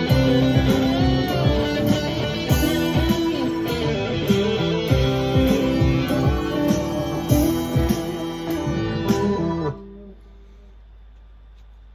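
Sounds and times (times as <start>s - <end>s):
electric guitar through an amp: 0.0s - 10.7s
low steady hum: 0.0s - 11.9s.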